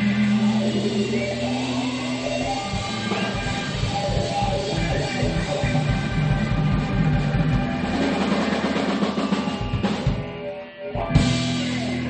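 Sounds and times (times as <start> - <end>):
busy drumming: 0.0 - 10.5, 11.1 - 12.0
blues-rock band playing: 0.0 - 12.0.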